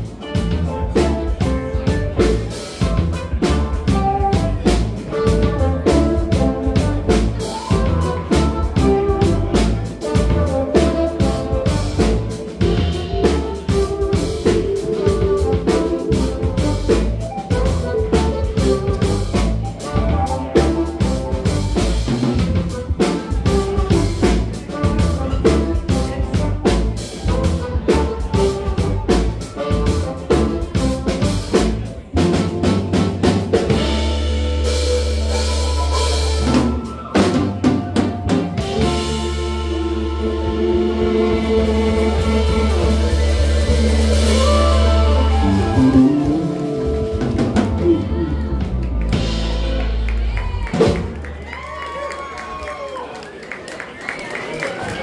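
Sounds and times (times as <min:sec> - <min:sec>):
busy drumming: 0:00.0 - 0:52.8
funk band playing: 0:00.0 - 0:53.0.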